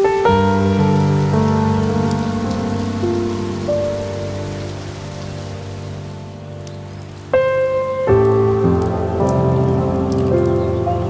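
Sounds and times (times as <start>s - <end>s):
soft instrumental music: 0.0s - 11.0s
steady rain: 0.0s - 11.0s.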